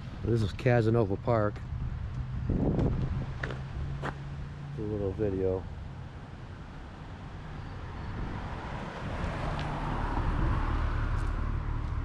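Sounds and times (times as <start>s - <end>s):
car driving past: 7.5s - 12.0s.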